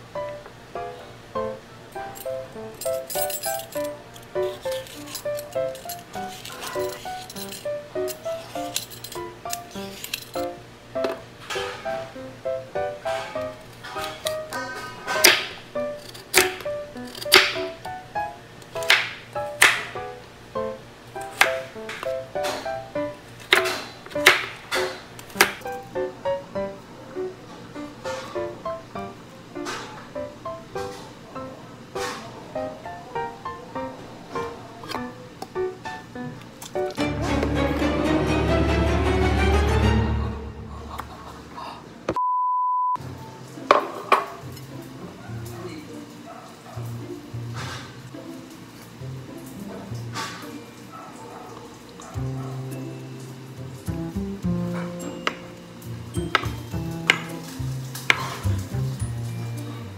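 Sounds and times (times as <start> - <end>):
plucked-string background music: 0.2 - 27.2, 34.8 - 41.0, 43.6 - 45.6, 46.8 - 50.4, 52.1 - 59.9
knife chopping on wooden board: 15.2 - 15.6, 16.3 - 17.7, 18.8 - 19.9
censor bleep: 42.2 - 43.0.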